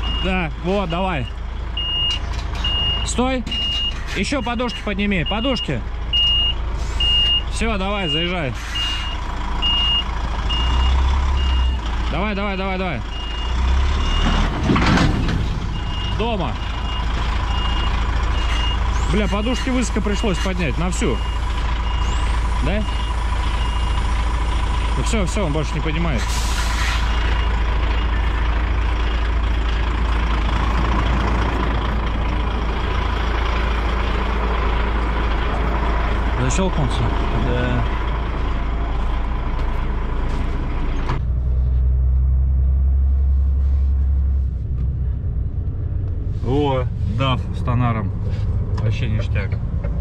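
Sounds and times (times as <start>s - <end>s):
truck reversing alarm beeping: 0.0s - 14.6s, 15.5s - 29.7s
diesel engine running: 0.0s - 50.0s.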